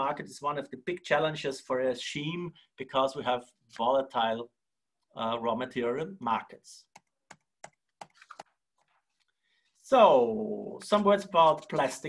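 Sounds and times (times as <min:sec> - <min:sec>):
computer keys clicking: 0:06.9 - 0:08.6.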